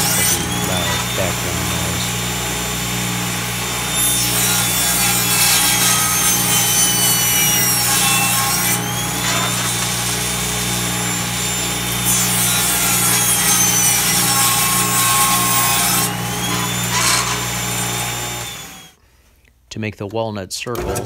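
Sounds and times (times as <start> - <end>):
saw blade whine: 0.0 - 19.0
table saw cutting wood: 0.0 - 19.0.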